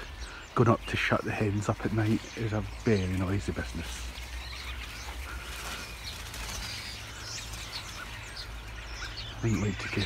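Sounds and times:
flock of small birds chirping: 0.0 - 10.0.

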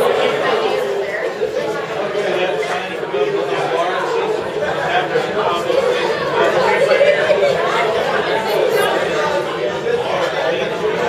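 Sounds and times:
crowd chatter in reverberant room: 0.0 - 11.0.

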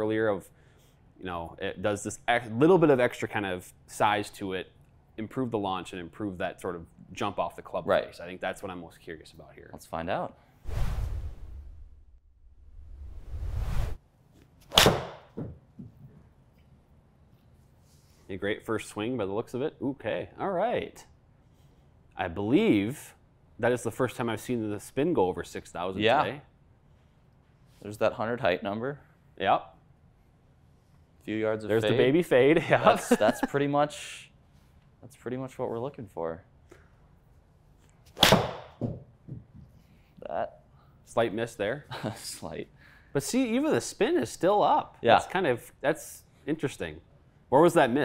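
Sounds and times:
whoosh: 10.6 - 14.0.

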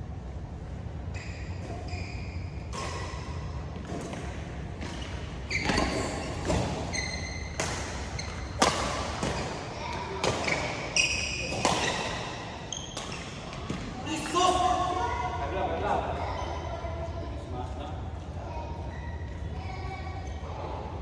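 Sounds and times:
shoes squeaking on court floor: 1.1 - 14.3
racket hitting shuttlecock: 2.7 - 13.9.

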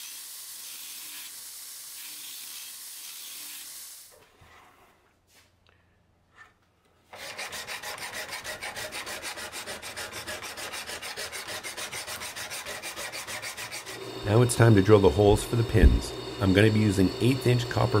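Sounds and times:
hand file rasping on steel: 7.1 - 14.1
belt grinder grinding steel: 7.2 - 18.0.

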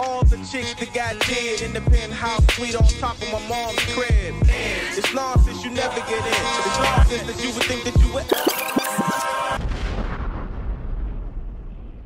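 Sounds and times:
hip hop music: 0.0 - 9.6
deep rumbling boom: 9.6 - 12.0.

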